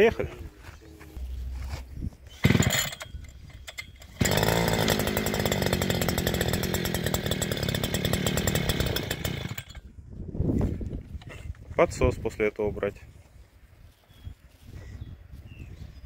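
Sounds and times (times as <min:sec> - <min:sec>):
two-stroke engine starting and idling: 0:02.4 - 0:09.9.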